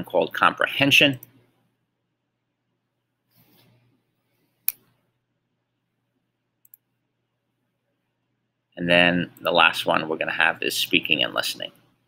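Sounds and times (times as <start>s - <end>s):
computer mouse click: 6.6s - 6.8s.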